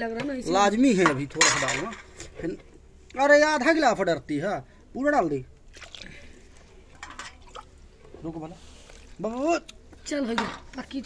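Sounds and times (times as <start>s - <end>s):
water pouring and dripping: 5.6s - 9.8s.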